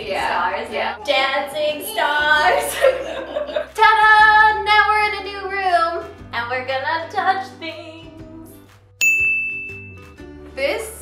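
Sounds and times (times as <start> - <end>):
soft background music: 0.0 - 11.0
bright bell chime: 9.0 - 10.1.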